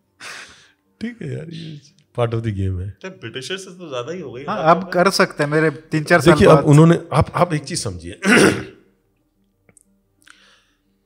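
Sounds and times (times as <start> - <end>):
man clearing his throat: 8.2 - 8.9.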